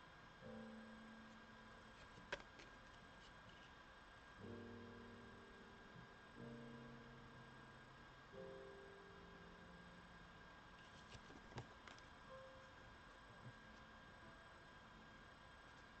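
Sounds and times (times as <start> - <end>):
soft sustained low chords: 0.0 - 2.0, 4.2 - 11.0, 12.1 - 16.0.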